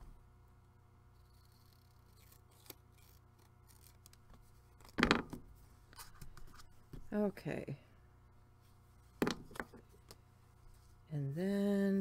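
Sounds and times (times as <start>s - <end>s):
scissors snipping paper: 1.2s - 4.2s.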